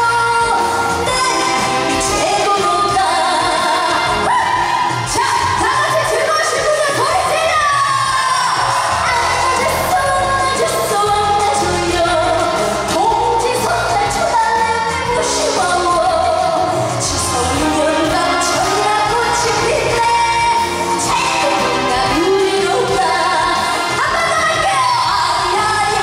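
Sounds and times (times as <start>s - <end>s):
woman singing into microphone: 0.0s - 26.0s.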